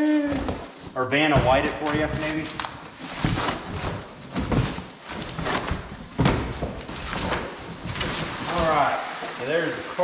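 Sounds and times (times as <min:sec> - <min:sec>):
cardboard tearing and thumping: 0:00.2 - 0:09.0.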